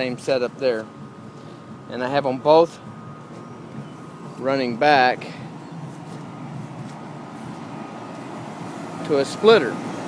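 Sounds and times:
air conditioning units humming: 0.0s - 10.0s.

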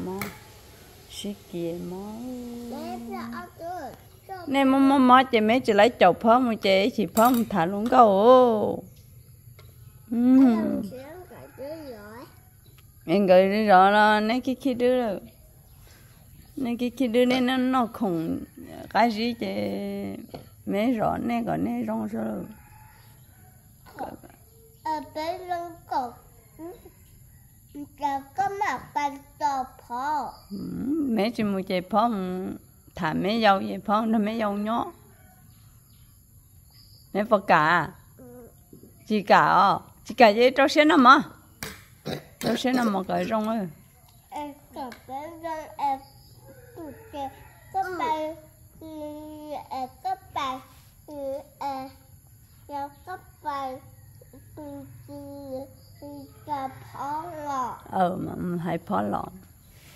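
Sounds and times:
voices talking: 0.0s - 23.0s, 23.8s - 27.1s, 27.7s - 35.1s, 37.1s - 59.5s
child's high voice: 2.7s - 4.6s, 10.4s - 12.4s, 24.8s - 26.9s, 27.8s - 30.4s, 44.3s - 46.0s, 46.8s - 52.0s, 52.7s - 53.8s, 54.6s - 57.9s
high-pitched insect chorus: 42.5s - 57.4s.

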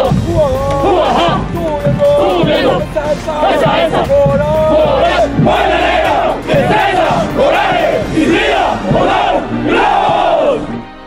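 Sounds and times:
troops shouting chant in unison: 0.0s - 10.9s.

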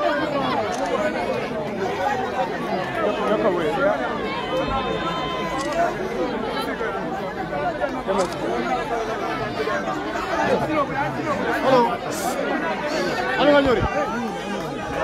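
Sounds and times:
crowd babble: 0.0s - 15.0s.

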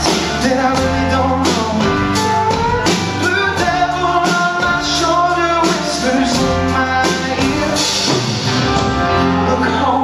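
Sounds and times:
live band playing: 0.0s - 10.0s
person singing: 0.0s - 10.0s.

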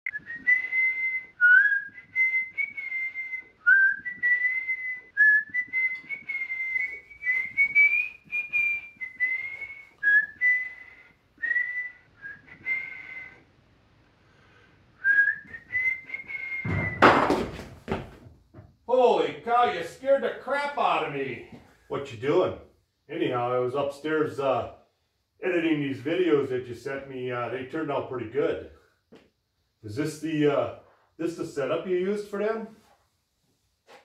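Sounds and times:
man whistling a tune: 0.1s - 13.5s, 15.0s - 17.2s.

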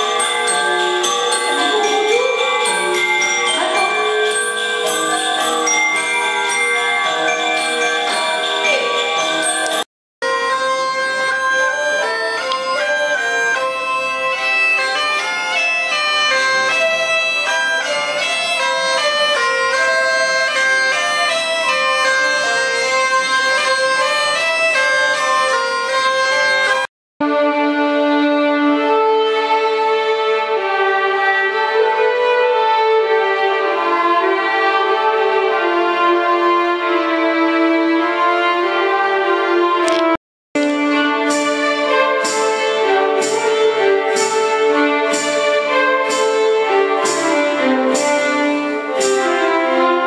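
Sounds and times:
violins playing sustained passage: 0.0s - 50.0s
bagpipe melody over drone: 10.2s - 27.5s.

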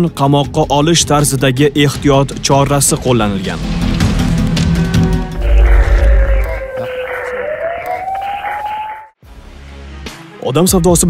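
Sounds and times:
siren-like tone: 3.5s - 9.2s.

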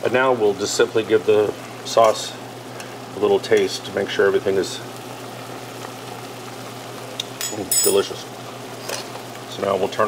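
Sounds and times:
sauce simmering with low hiss: 0.0s - 10.0s.

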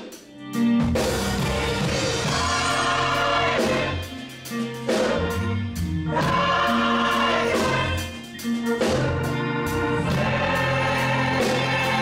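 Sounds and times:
organ accompaniment: 0.0s - 12.0s
choir singing gospel: 1.0s - 12.0s.

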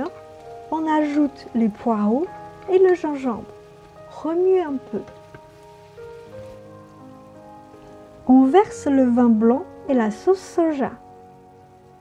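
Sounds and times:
meat sizzling in a hot wok: 0.0s - 12.0s.

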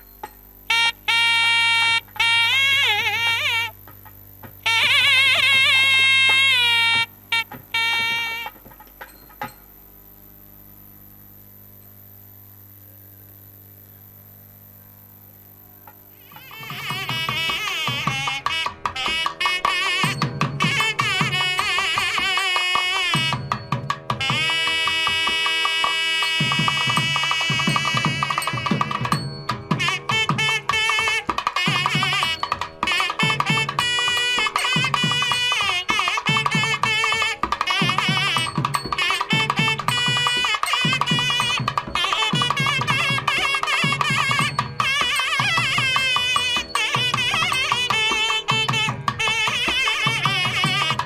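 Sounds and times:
drum beats: 0.0s - 9.8s, 15.8s - 51.0s
double reed horn melody: 0.7s - 4.0s, 4.6s - 8.8s, 16.0s - 51.0s.

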